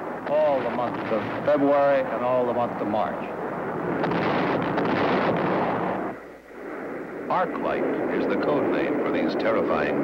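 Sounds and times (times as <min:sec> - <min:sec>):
bomb explosion rumbling blast: 0:00.0 - 0:10.0.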